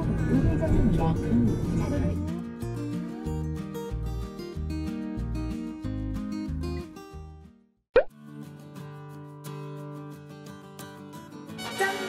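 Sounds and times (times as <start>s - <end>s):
background music: 0.0s - 7.0s, 11.6s - 12.0s
background guitar music: 0.0s - 12.0s.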